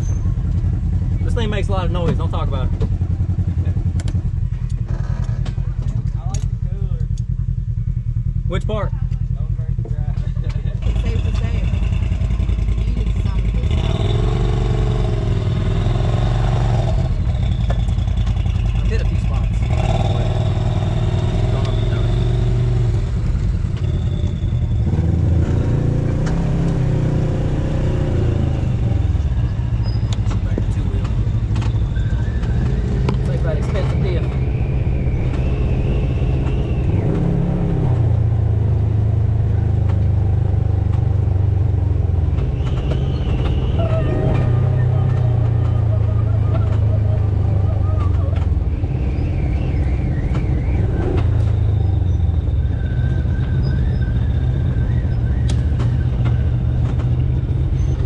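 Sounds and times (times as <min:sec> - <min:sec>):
off-road vehicle engine droning: 0:00.0 - 0:58.0.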